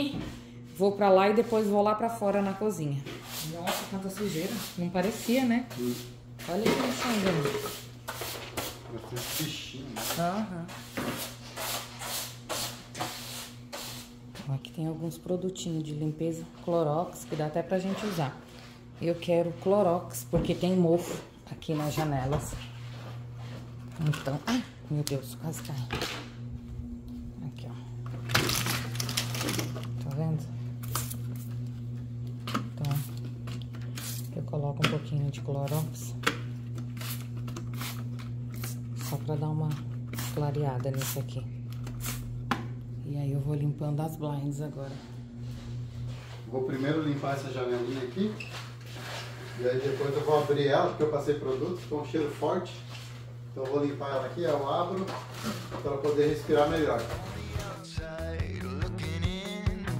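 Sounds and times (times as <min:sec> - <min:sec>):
steady low hum: 0:00.0 - 0:59.9
broom sweeping a hard floor: 0:03.0 - 0:14.1, 0:44.8 - 0:50.8.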